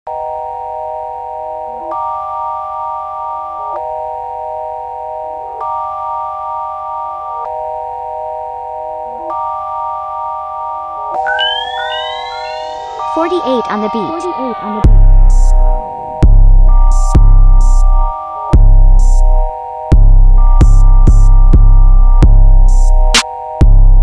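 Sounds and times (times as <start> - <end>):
rising synth sweeps: 11.2 - 16.2
trap instrumental beat: 11.2 - 19.4
sustained synthesizer chords: 11.2 - 19.5
low bass: 14.9 - 23.0.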